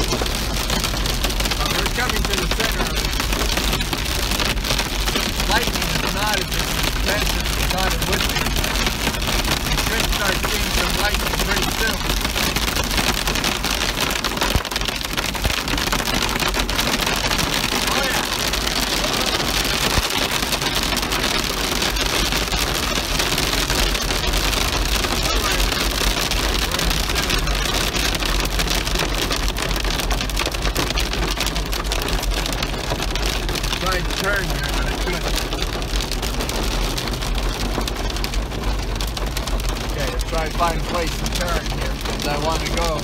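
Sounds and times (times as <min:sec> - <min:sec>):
car rumbling on wet road: 0:00.0 - 0:43.0
heavy rain on car roof: 0:00.0 - 0:43.0.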